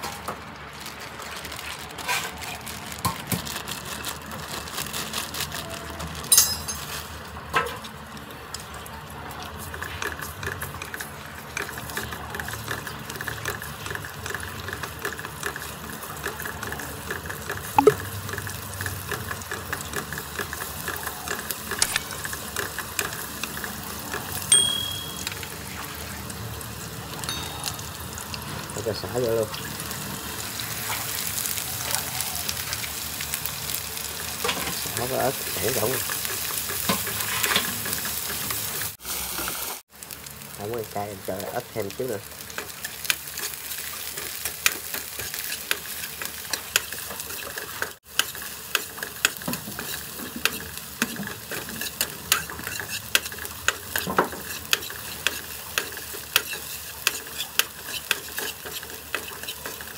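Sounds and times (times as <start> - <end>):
garlic sizzling in a wok: 1.4 - 59.9.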